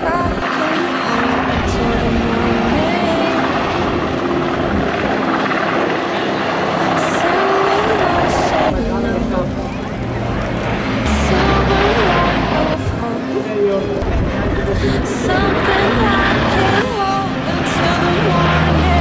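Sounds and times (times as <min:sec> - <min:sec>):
helicopter flying past: 0:00.0 - 0:13.1, 0:13.7 - 0:19.0.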